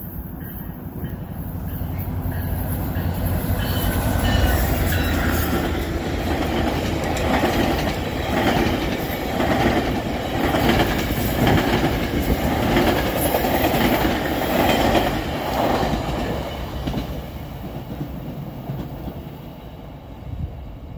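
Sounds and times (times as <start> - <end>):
train wheels clicking over rails: 0.0 - 19.5.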